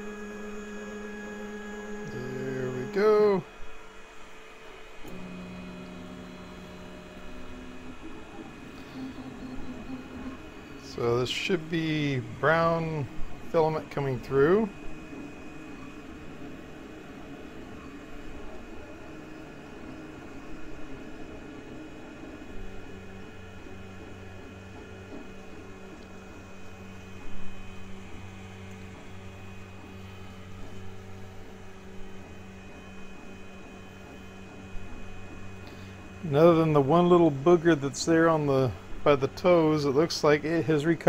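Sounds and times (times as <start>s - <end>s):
thin high whine: 0.0s - 3.8s, 5.0s - 19.6s
printer fans and stepper motors humming: 0.0s - 41.0s.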